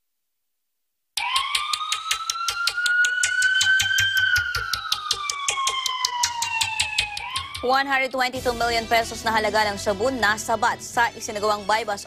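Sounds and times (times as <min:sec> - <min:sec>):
fast ticking beat: 0:01.2 - 0:08.0
siren wail sound effect: 0:01.2 - 0:08.4.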